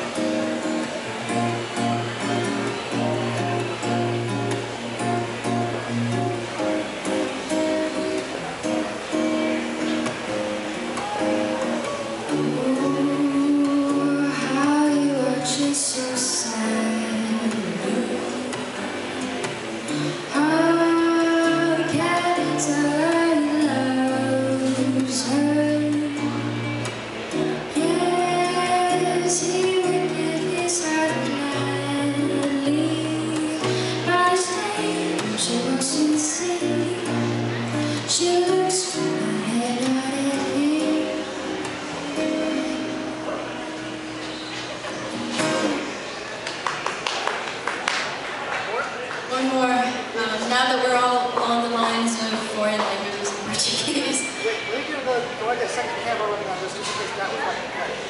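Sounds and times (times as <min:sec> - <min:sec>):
acoustic guitar: 0:00.0 - 0:58.0
woman singing: 0:12.3 - 0:18.7, 0:20.0 - 0:26.9, 0:27.6 - 0:43.3.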